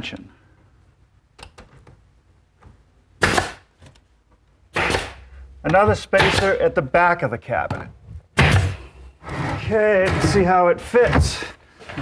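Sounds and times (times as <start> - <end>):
nail gun hissing pop: 3.2 - 3.7, 4.7 - 5.3.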